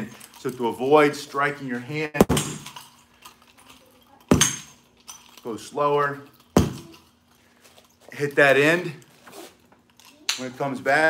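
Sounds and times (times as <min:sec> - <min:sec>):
nunchuck smacking punching bag: 0:02.2 - 0:02.8, 0:04.3 - 0:04.8, 0:06.6 - 0:07.0
nunchuck clattering rattle: 0:02.2 - 0:08.0.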